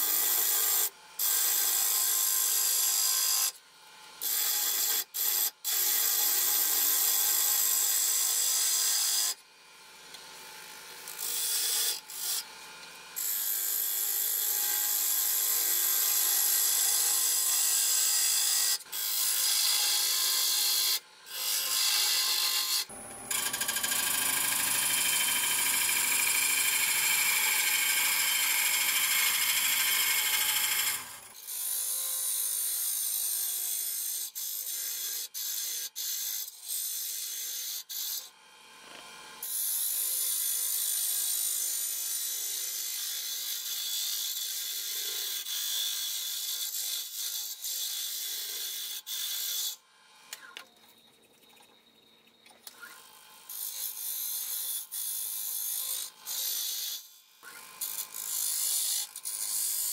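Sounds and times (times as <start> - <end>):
lathe cutter scraping wood: 20.8 - 31.7.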